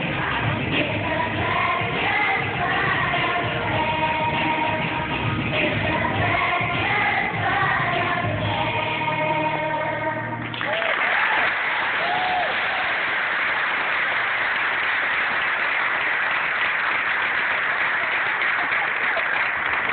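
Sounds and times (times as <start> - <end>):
children's choir singing: 0.0 - 10.5
audience applauding: 10.4 - 19.9
audience cheering: 10.5 - 13.3.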